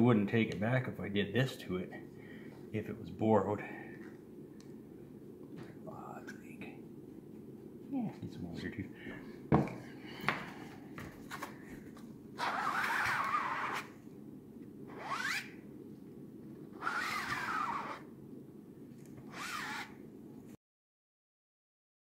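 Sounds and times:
squeegee scraping squeak on mesh: 0:16.8 - 0:18.0, 0:19.3 - 0:19.9.

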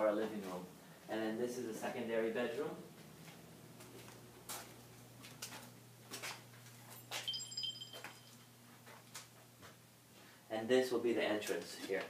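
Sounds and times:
footsteps on a floor: 0:03.0 - 0:07.3.

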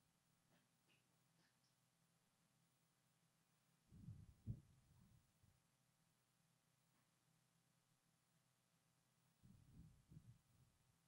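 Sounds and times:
soft low thumps: 0:04.0 - 0:05.1.

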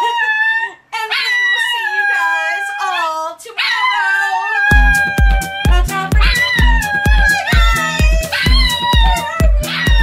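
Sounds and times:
music with heavy bass beat: 0:04.7 - 0:10.0.

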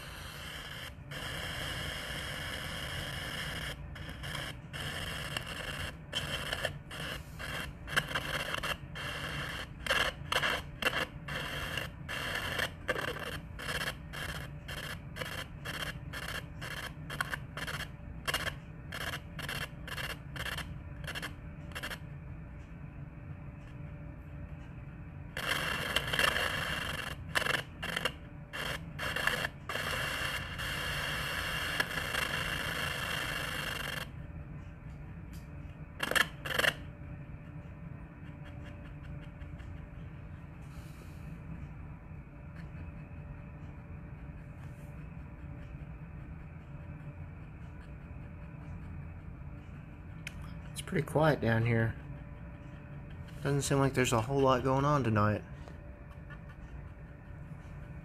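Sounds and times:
choppy radio static hiss: 0:00.0 - 0:22.2, 0:25.3 - 0:34.1, 0:36.0 - 0:37.6, 0:42.3 - 0:55.9.

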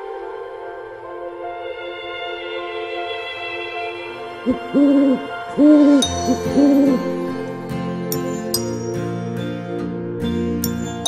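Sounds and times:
soft background music: 0:00.0 - 0:11.0
owl hooting: 0:04.4 - 0:07.1.

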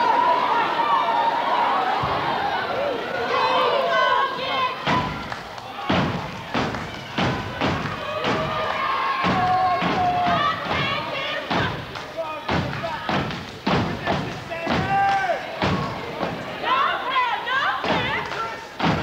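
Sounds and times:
stomping and clapping: 0:04.5 - 0:19.0.

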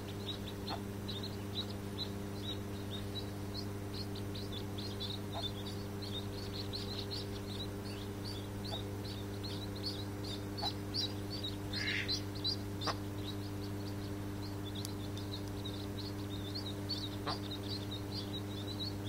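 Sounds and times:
ducklings peeping: 0:00.0 - 0:19.0
steady low hum: 0:00.0 - 0:19.0.

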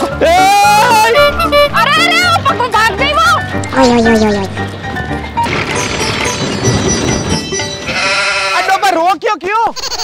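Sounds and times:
man yelling: 0:00.1 - 0:01.4.

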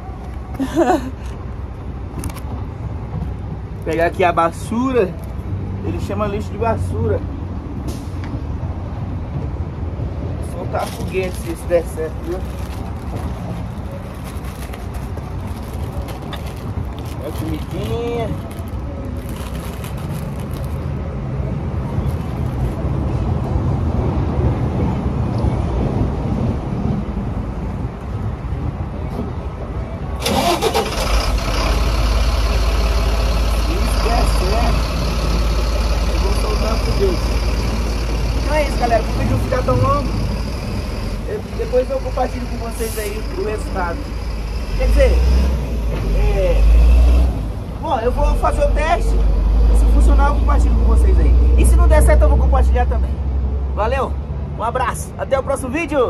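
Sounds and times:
background engine hum: 0:00.0 - 0:56.0
people talking: 0:17.2 - 0:18.4, 0:33.5 - 0:34.9, 0:36.1 - 0:37.3, 0:38.5 - 0:40.2
vehicle engine starting and rumbling: 0:30.1 - 0:52.4.

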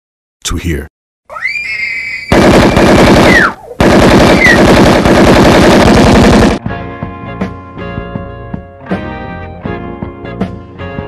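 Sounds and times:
falling whistle-like tone: 0:01.3 - 0:02.4
automatic gunfire: 0:02.3 - 0:06.6.

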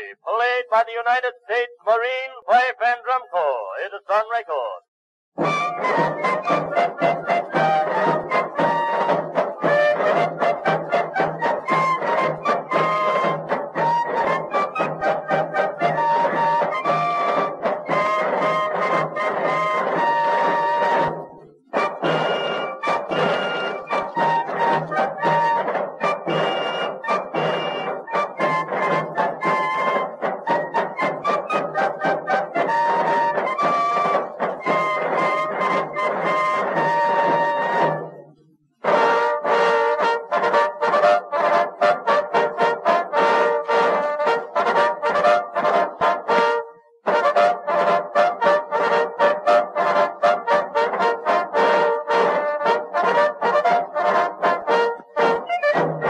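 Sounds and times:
fifes playing a march: 0:05.4 - 0:38.2, 0:38.8 - 0:56.0.

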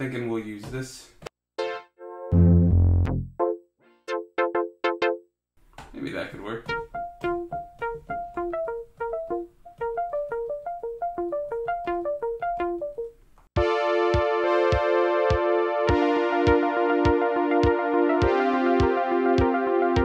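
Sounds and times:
sustained synth chord: 0:01.6 - 0:05.2
synthesizer arpeggio: 0:01.6 - 0:05.3, 0:06.6 - 0:20.0.

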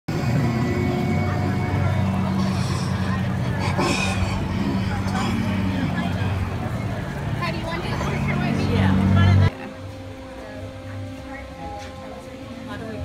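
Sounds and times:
indistinct voices: 0:00.1 - 0:13.0
low engine-like hum: 0:00.1 - 0:13.0.

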